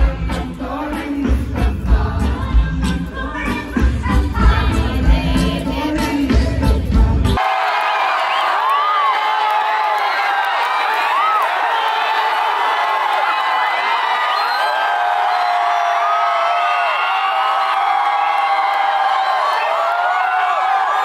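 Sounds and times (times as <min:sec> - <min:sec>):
crowd cheering and screaming: 0:07.4 - 0:21.0.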